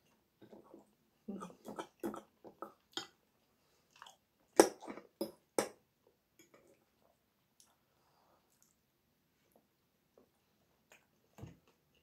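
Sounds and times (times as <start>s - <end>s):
person chewing: 3.9s - 5.4s.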